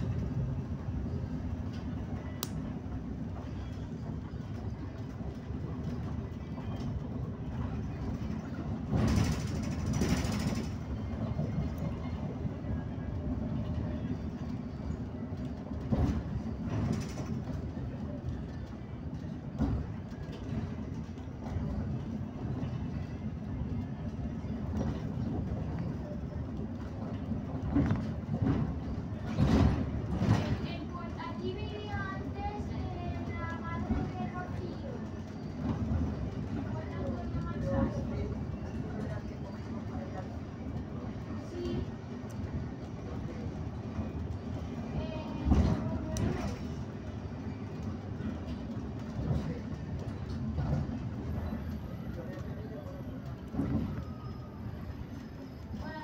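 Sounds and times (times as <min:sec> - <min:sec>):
faint voices: 0:00.0 - 0:56.0.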